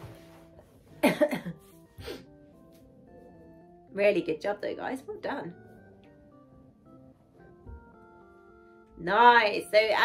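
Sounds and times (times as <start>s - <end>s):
faint background music: 0.0s - 10.0s
woman coughing: 1.0s - 1.6s.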